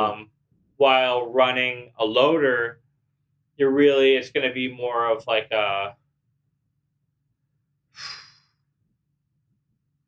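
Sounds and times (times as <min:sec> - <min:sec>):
breathy exhale: 0:08.0 - 0:08.6.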